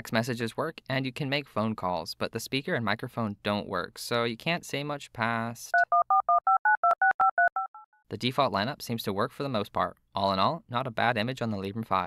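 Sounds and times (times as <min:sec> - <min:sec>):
telephone keypad tones: 0:05.8 - 0:07.8.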